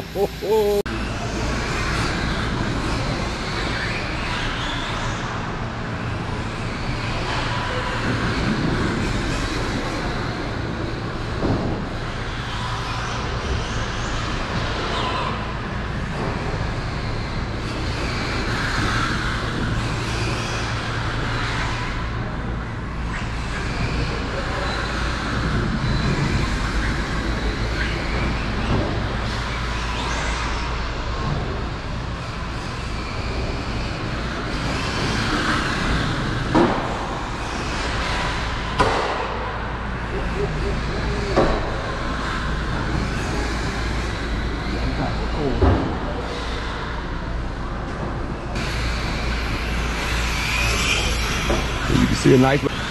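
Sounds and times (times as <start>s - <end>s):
low hum in hall: 0.0s - 52.9s
rc car motor and tyre drone: 1.7s - 52.9s.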